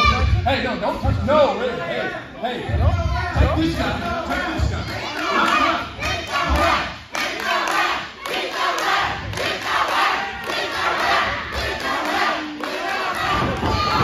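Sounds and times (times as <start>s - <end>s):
crowd shouting and yelling: 0.0s - 14.0s.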